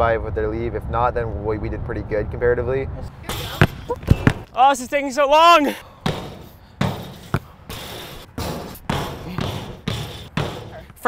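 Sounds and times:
basketball bouncing on asphalt: 3.1 - 4.5, 6.0 - 11.0.

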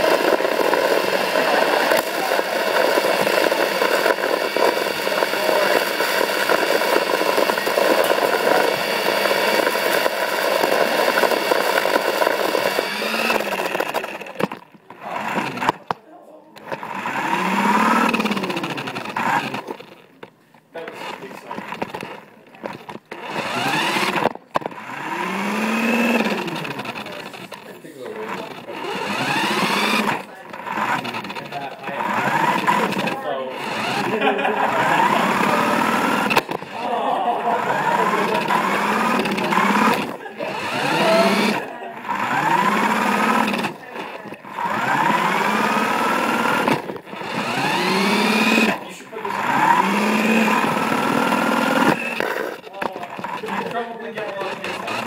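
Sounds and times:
toy car electric motor whining: 0.0 - 16.0, 16.6 - 55.0.

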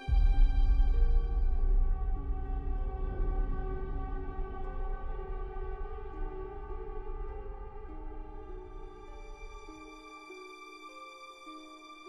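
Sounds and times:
low rumble: 0.0 - 10.0
sustained string chords: 0.0 - 12.0.

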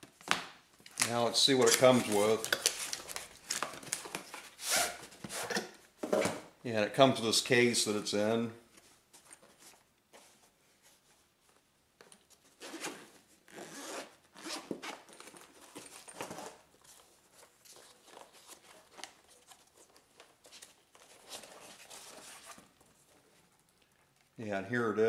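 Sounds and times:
case handling sounds: 12.0 - 24.2
zipper pulled open: 12.6 - 15.0.

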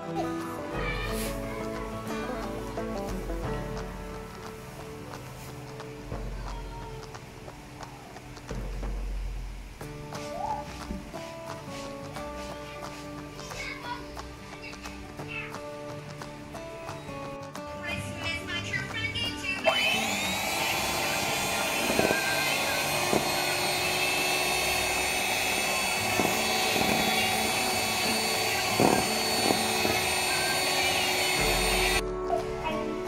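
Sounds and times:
electric hand mixer whining: 19.6 - 32.0.

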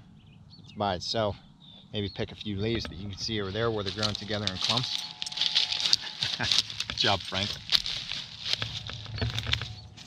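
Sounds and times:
rustling of dry leaves and twigs: 3.2 - 10.0
person laughing: 5.8 - 6.8.

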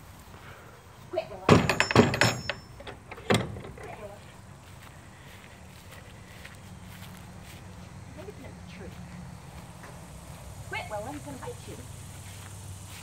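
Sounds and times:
pen door banging and rattling: 1.4 - 4.1.

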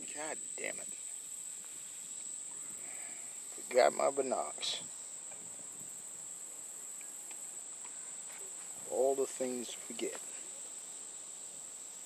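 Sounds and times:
crickets trilling: 0.0 - 12.0
faint background hiss: 0.0 - 12.0.

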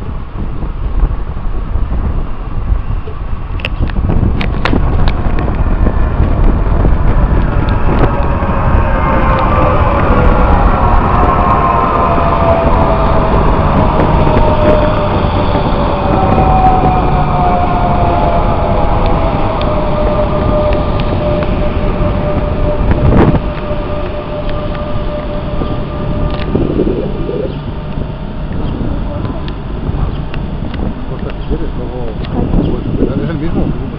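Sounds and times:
passenger train passing: 0.0 - 33.9.

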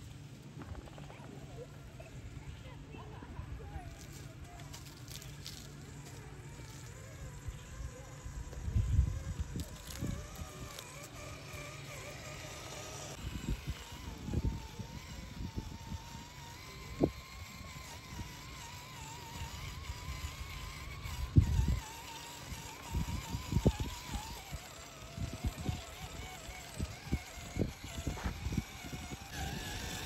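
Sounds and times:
electric motor whining: 3.6 - 30.0.

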